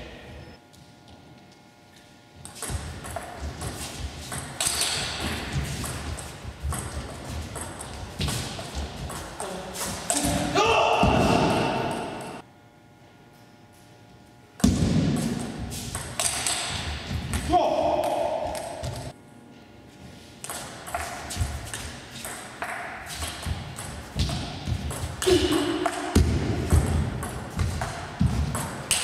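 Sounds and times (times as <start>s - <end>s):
player shouting: 10.2s - 12.4s, 17.4s - 18.9s.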